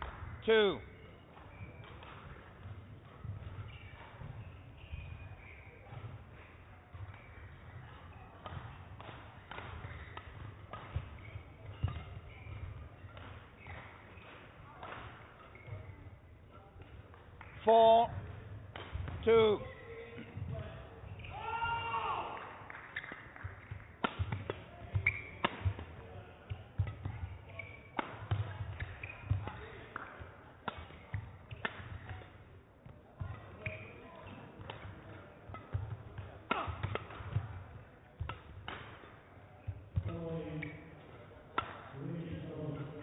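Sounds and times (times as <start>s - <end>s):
shoe squeaks on court: 0.9s - 8.8s, 9.6s - 16.6s, 20.7s - 21.8s, 22.8s - 23.8s, 24.6s - 26.0s, 26.6s - 29.8s, 33.2s - 34.5s
person speaking: 17.6s - 18.1s.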